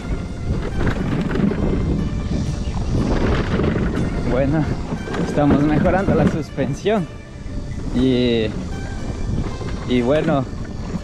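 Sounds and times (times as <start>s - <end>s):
electric scooter rattling over bumps: 0.0s - 11.0s
wind buffeting microphone: 0.0s - 11.0s.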